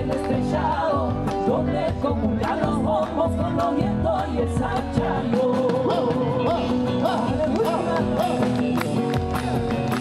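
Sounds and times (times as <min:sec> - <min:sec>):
folk band playing: 0:00.0 - 0:10.0.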